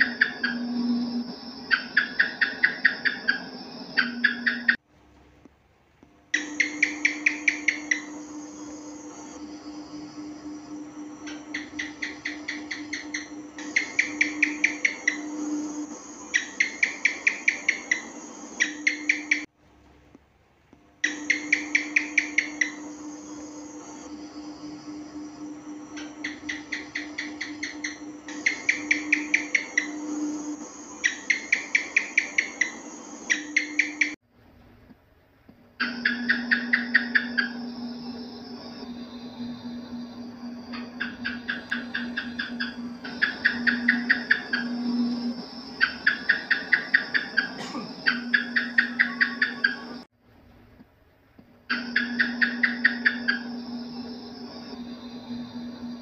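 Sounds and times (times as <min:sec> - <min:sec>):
geckos chirping in click trains: 0:00.0 - 0:04.8, 0:06.3 - 0:19.5, 0:21.0 - 0:34.2, 0:35.8 - 0:50.1, 0:51.7 - 0:56.0
steady low hum: 0:00.0 - 0:56.0.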